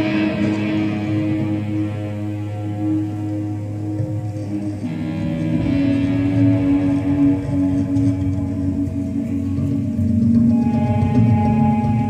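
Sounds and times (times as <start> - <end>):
electronic droning tones: 0.0 - 12.0.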